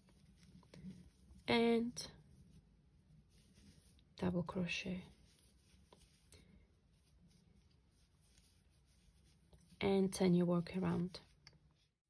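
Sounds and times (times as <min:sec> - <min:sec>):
crochet hook drawing yarn: 0:03.2 - 0:11.9.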